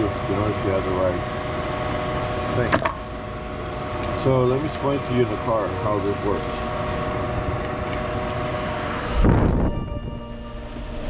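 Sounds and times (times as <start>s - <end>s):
electric fan humming: 0.0s - 11.0s.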